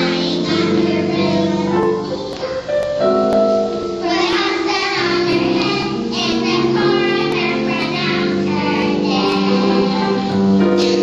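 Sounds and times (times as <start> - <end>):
children's choir singing: 0.0 - 3.1, 3.9 - 11.0.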